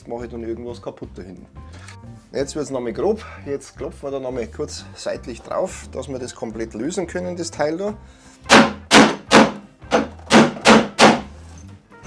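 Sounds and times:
hammer striking wooden board: 8.5s - 11.3s.

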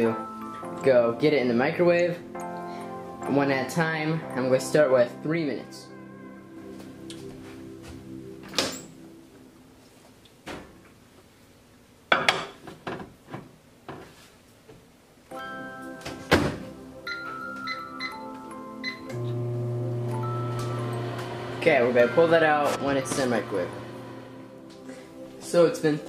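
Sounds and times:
keypad beeps: 17.1s - 19.1s
microwave low hum: 19.0s - 24.6s.

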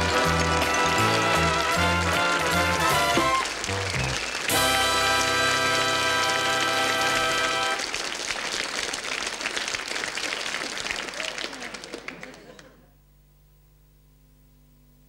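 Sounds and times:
sitcom theme music: 0.0s - 7.8s
studio audience applause: 0.0s - 12.8s.

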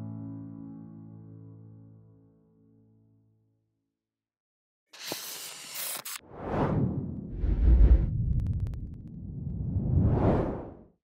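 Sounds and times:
deep rising whoosh: 6.2s - 10.9s.

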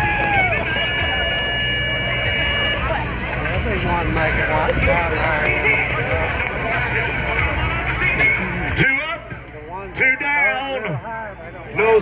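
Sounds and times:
crowd chatter: 0.0s - 12.0s
electronic buzzer tone: 0.5s - 3.0s.

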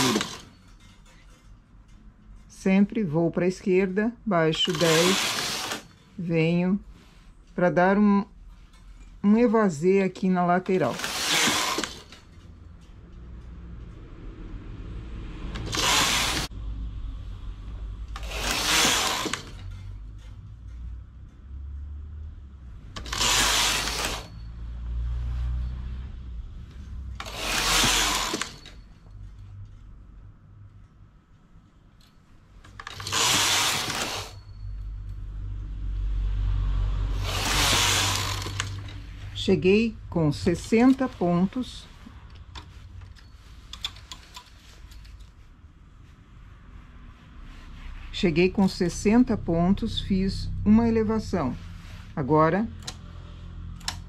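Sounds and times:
knitting machine carriage pass: 0.0s - 1.4s, 4.5s - 6.2s, 8.8s - 30.2s, 32.6s - 54.0s
handling of knitting needles: 0.0s - 13.8s, 26.7s - 30.1s, 32.0s - 34.7s, 37.2s - 53.1s.

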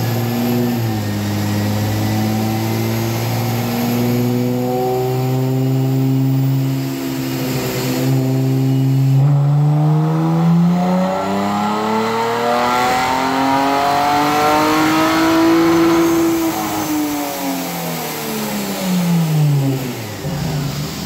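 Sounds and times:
car engine revving on dyno: 0.0s - 21.0s.

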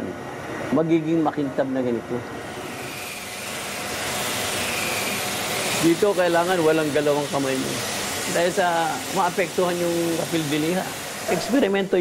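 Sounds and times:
disc grinder grinding glass: 2.4s - 12.0s.

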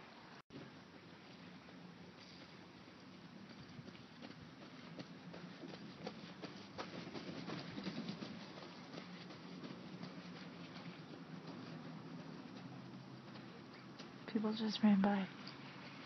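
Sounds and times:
footsteps of people running: 0.6s - 14.3s.

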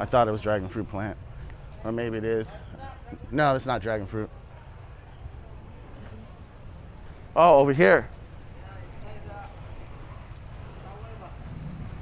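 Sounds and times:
indistinct voices of passers-by: 0.0s - 12.0s
traffic rumble: 0.0s - 12.0s.

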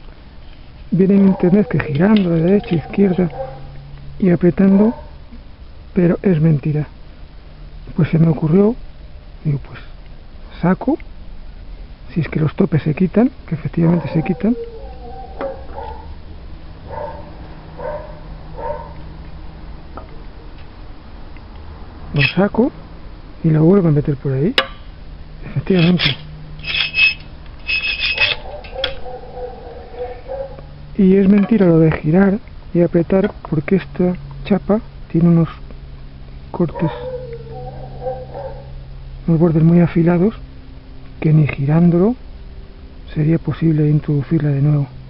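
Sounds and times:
steady low hum: 0.0s - 45.0s
dog barking: 1.2s - 3.8s, 4.7s - 5.2s, 13.9s - 16.2s, 16.8s - 19.0s, 28.2s - 30.8s, 36.7s - 38.8s
high-pitched animal whine: 14.0s - 16.0s, 25.7s - 30.6s.

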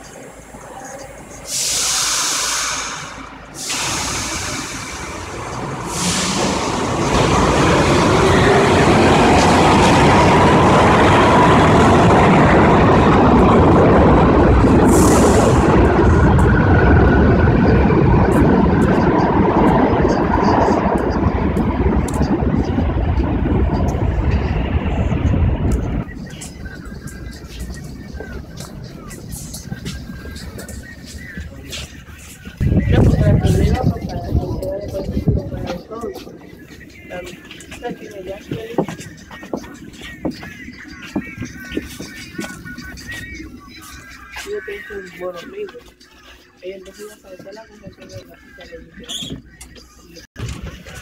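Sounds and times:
subway train rumbling on track: 0.0s - 51.0s
air hiss bursts: 1.4s - 7.7s, 14.8s - 15.6s.

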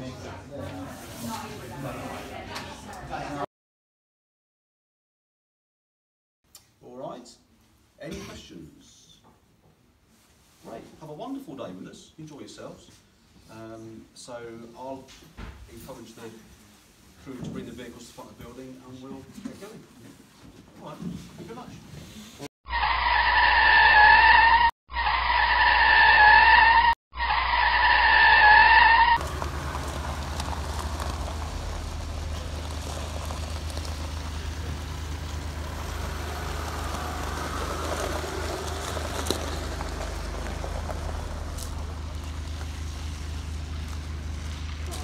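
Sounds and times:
tyre skid squeal: 22.7s - 41.6s
car engine running at low revs: 29.2s - 45.0s.

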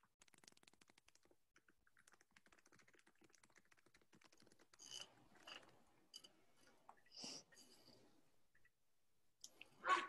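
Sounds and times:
typing on computer keyboard: 0.1s - 5.6s.

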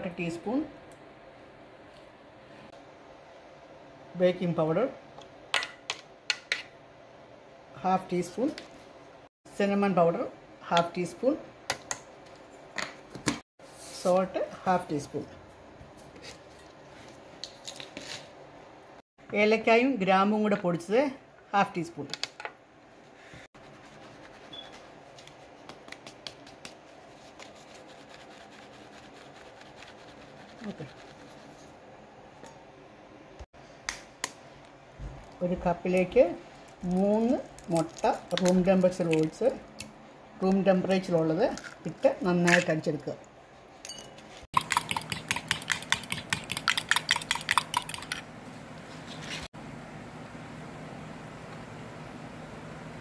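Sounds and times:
flour scratching in a sieve: 23.6s - 31.8s
metal spoon whisking eggs in mug: 43.9s - 48.3s.

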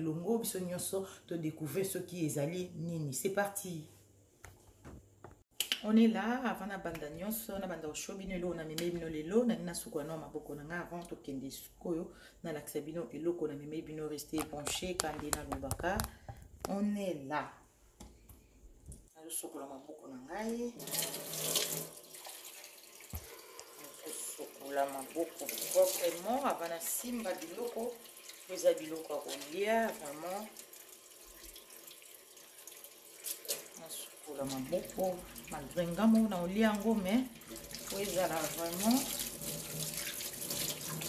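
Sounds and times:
tap water running into sink: 20.8s - 41.0s.

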